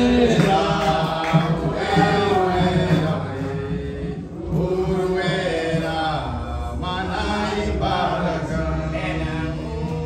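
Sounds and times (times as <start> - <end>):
voices singing a slow hymn: 0.0 - 10.0.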